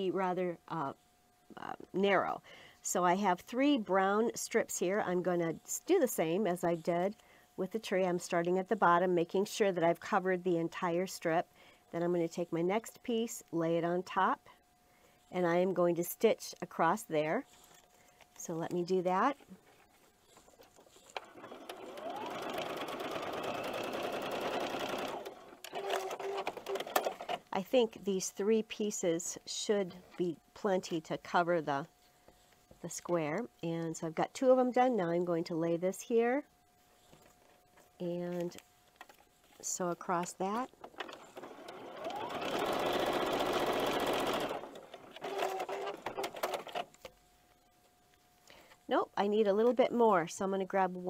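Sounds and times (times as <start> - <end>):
sewing machine stitching: 21.0 - 27.5, 40.8 - 46.9.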